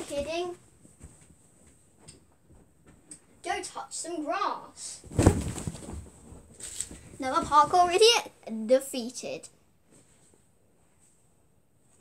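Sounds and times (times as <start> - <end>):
people scuffling and rustling: 5.0 - 8.0
thump: 5.1 - 6.1.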